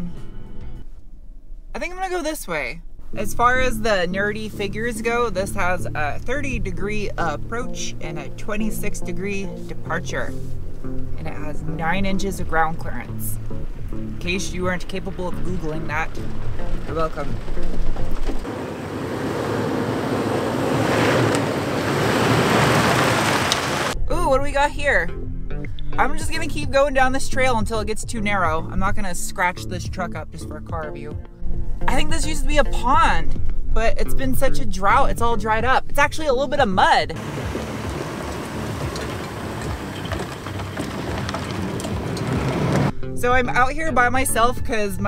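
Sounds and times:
low engine rumble: 0:00.0 - 0:25.1, 0:31.4 - 0:44.5
tyre and wind noise: 0:16.0 - 0:24.0, 0:36.8 - 0:42.9
stones ticking: 0:37.2 - 0:42.9.

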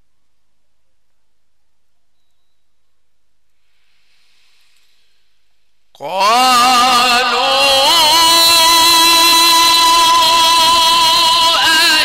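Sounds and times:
breath-like hiss: 0:03.6 - 0:05.7.

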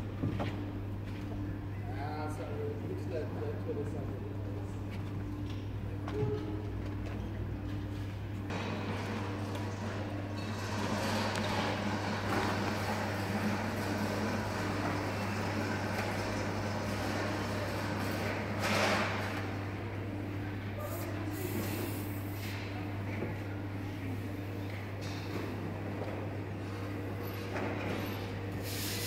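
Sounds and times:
printer humming: 0:00.0 - 0:29.0.

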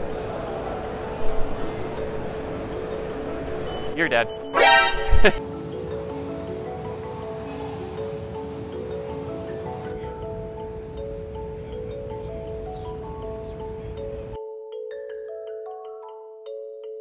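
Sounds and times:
light background music: 0:00.0 - 0:17.0.

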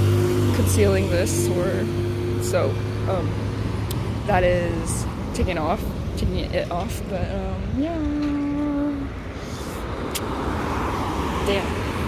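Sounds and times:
low outdoor rumble: 0:00.0 - 0:10.2.

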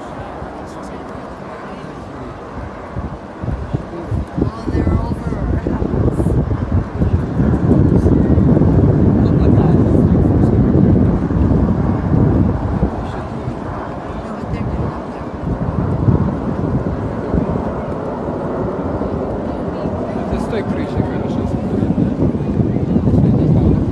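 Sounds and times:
jet aircraft roar overhead: 0:00.0 - 0:23.9.

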